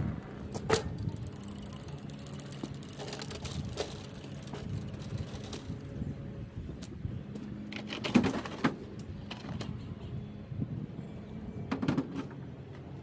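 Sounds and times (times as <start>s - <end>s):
lawn mower wheels rattling: 0.0s - 6.3s.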